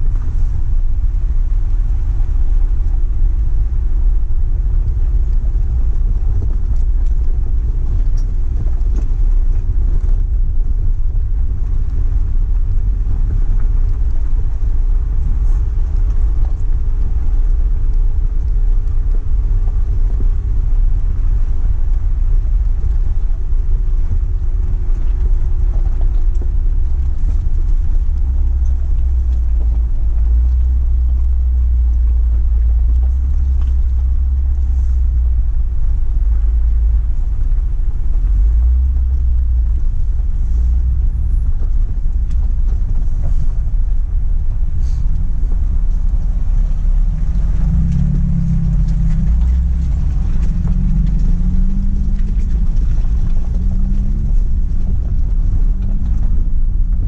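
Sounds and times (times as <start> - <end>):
vehicle engine low rumble: 0.0 - 57.0.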